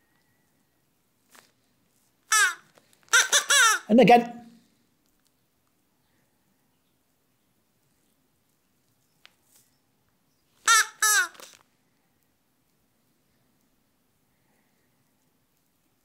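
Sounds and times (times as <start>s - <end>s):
high-pitched crow-like vocal calls: 2.3s - 3.9s, 10.6s - 11.6s.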